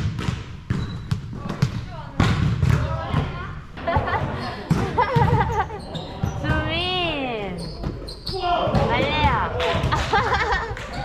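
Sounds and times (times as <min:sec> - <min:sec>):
volleyballs bouncing on gym floor: 0:00.0 - 0:11.0.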